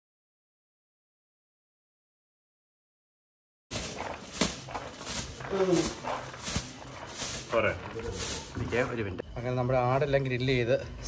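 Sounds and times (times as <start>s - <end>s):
rice pouring onto a leaf: 3.7s - 9.0s.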